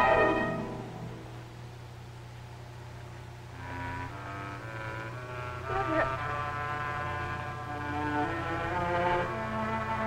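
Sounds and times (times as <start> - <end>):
slow dramatic underscore: 0.0 - 10.0
steady low hum: 0.0 - 10.0.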